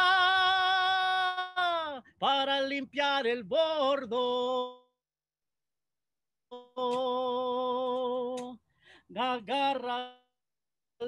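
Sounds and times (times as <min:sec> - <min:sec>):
faint breath: 0:08.7 - 0:09.1.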